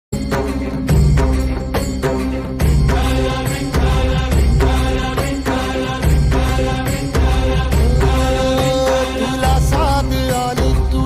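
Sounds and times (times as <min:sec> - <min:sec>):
percussion strikes: 0:00.1 - 0:11.0
chanted singing: 0:02.1 - 0:11.0.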